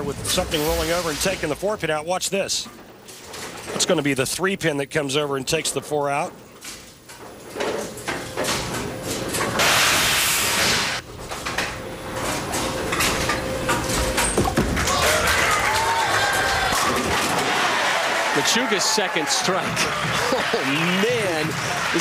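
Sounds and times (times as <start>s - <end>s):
bowling pins clattering: 1.6s - 9.6s, 11.0s - 18.6s.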